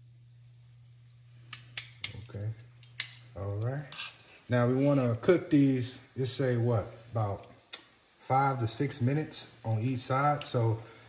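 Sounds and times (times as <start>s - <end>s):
low steady hum: 0.0s - 11.0s
metal tongs clicking on pot: 1.5s - 4.1s.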